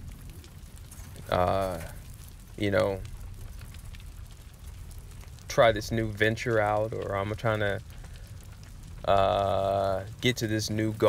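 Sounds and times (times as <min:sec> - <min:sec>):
faint crackles: 0:00.0 - 0:11.0
steady hiss: 0:00.0 - 0:11.0
person speaking: 0:01.2 - 0:01.9, 0:09.1 - 0:11.0.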